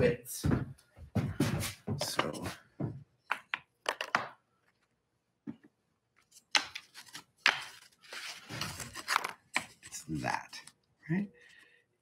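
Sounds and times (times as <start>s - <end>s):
wooden pieces knocking and clacking: 3.2s - 4.8s, 7.4s - 7.8s.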